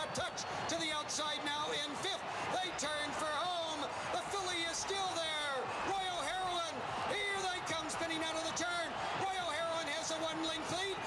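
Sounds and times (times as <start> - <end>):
man calling a horse race: 0.0 - 11.0.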